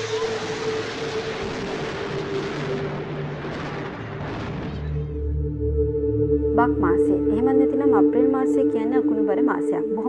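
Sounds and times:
thunder rolling: 0.0s - 5.6s
music drone: 0.0s - 10.0s.

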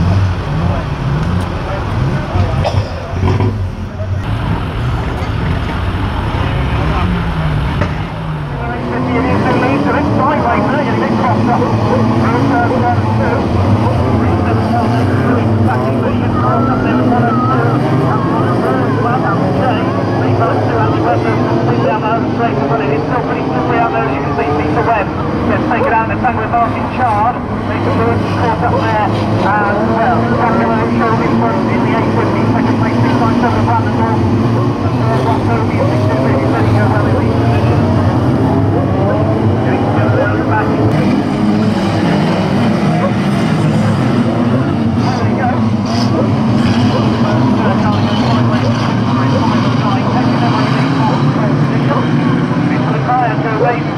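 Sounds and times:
car engines revving: 0.0s - 53.9s.

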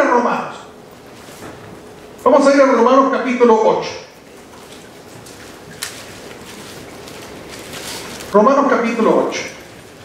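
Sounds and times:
book pages being turned: 4.4s - 8.5s.

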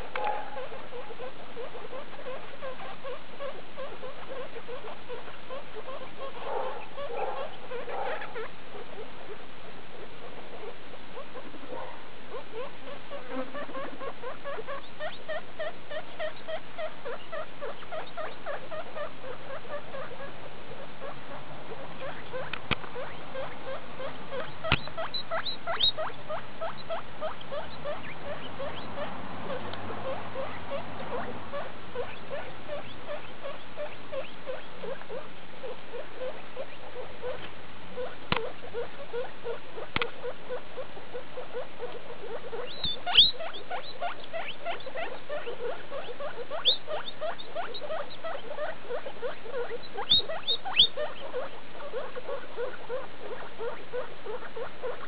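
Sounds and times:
guinea pigs calling: 0.0s - 55.0s.

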